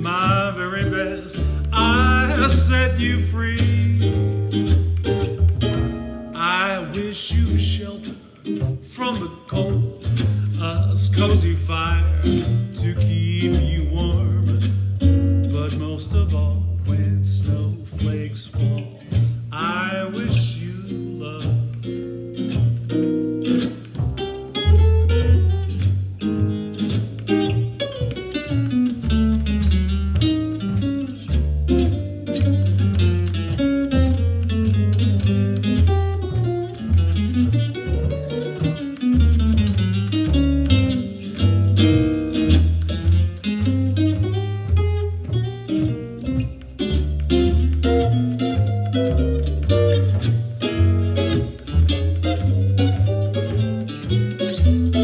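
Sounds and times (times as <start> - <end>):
jazz guitar: 0.0 - 55.0
plucked double bass: 0.0 - 55.0.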